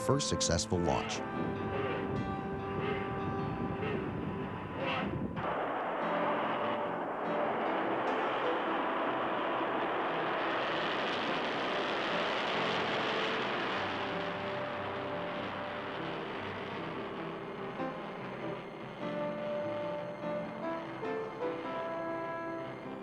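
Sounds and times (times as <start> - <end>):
held music notes: 0.0 - 5.1
rocket engine exhaust rush: 0.0 - 22.8.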